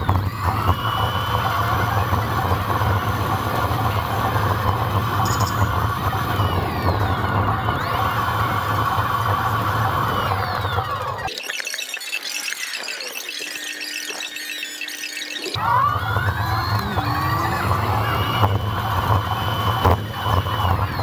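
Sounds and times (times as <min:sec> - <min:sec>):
low engine drone: 0:00.0 - 0:11.3, 0:15.6 - 0:21.0
high-pitched whine: 0:00.0 - 0:21.0.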